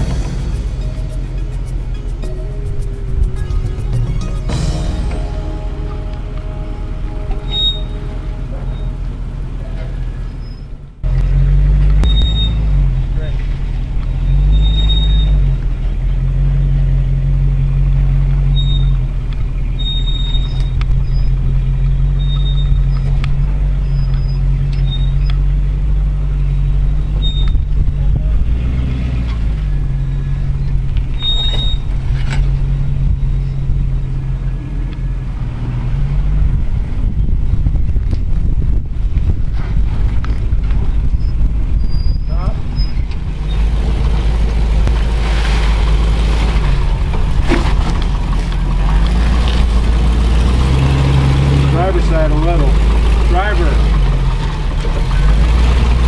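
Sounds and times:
engine running at low revs: 0.0 - 56.0.

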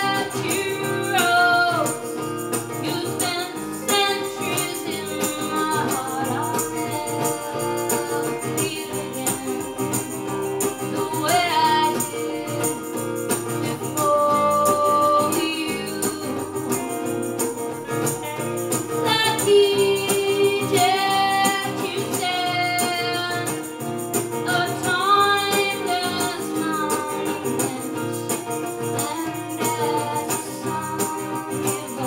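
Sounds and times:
electric guitar: 0.0 - 32.0
strummed acoustic guitar: 0.0 - 32.0
tambourine steady beat: 0.0 - 32.0.

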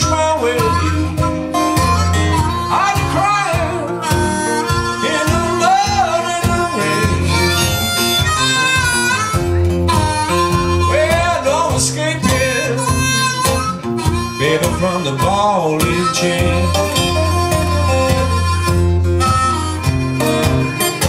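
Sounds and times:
acoustic guitar strummed: 0.0 - 21.0
bending melody line: 0.0 - 21.0.

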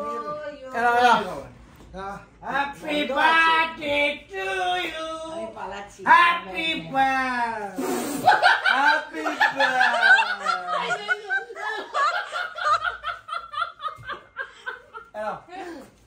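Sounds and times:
brief hiss: 7.8 - 8.3
group of people laughing: 8.2 - 15.2.

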